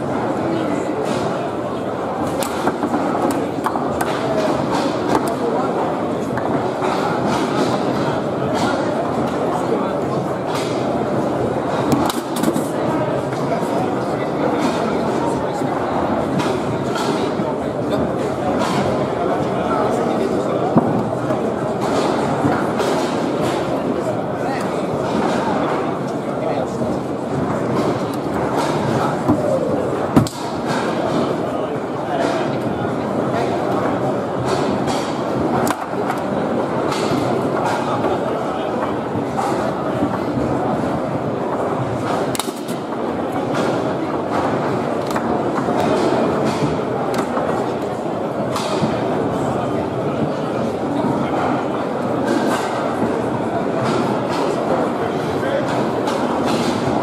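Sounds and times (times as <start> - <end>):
babble and clatter of hall: 0.0 - 57.0
foosball players striking ball: 0.0 - 57.0.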